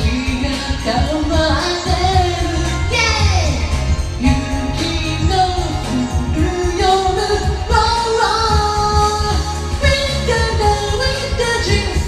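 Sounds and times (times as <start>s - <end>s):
backing track with drums and bass: 0.0s - 12.0s
woman singing pop song: 0.0s - 12.0s.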